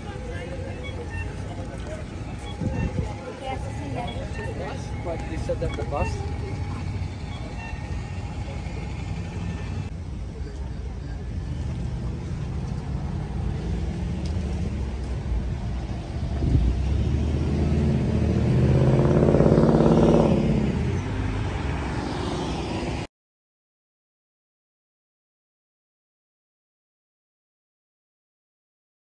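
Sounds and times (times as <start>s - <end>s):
city traffic rumble: 0.0s - 23.1s
vehicle passing close: 11.4s - 23.1s.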